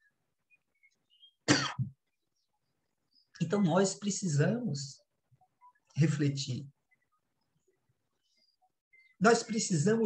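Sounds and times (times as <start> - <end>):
man coughing: 1.5 - 1.9.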